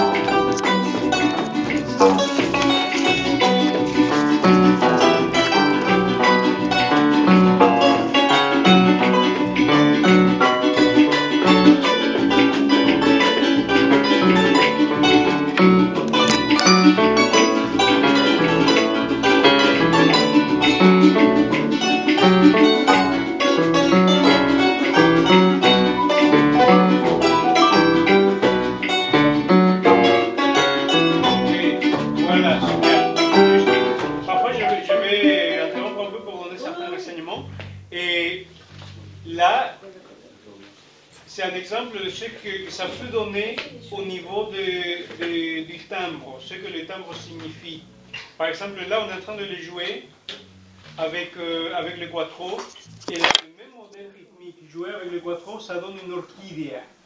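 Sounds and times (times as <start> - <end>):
harp and cuatro instrumental: 0.0 - 39.4.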